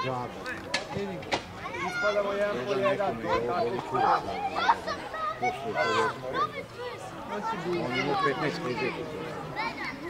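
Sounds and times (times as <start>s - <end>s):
voices calling out: 0.0s - 10.0s.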